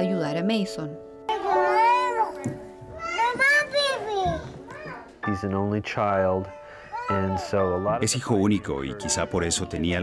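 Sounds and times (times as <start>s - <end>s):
soft guitar music: 0.0s - 10.0s
young child calling out: 3.0s - 5.1s.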